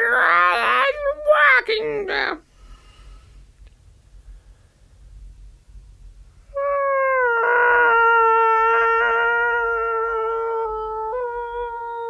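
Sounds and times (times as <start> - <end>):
voice holding a high note: 6.6 - 12.0.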